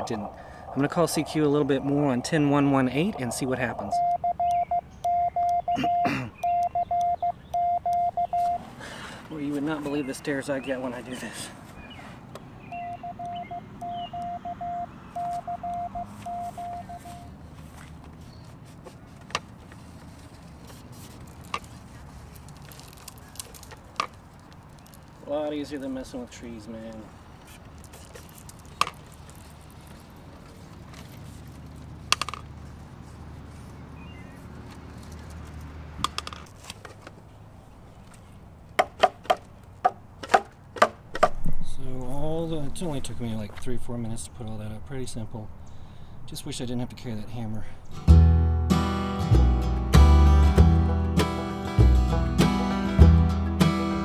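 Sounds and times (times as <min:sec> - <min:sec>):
morse code beeps: 0:03.7 - 0:08.6, 0:12.7 - 0:17.3
sharp hollow knocks: 0:38.8 - 0:41.6.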